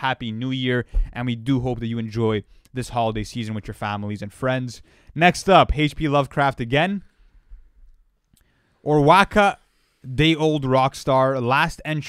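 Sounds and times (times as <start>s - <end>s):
man speaking: 0.0s - 7.1s, 8.8s - 12.0s.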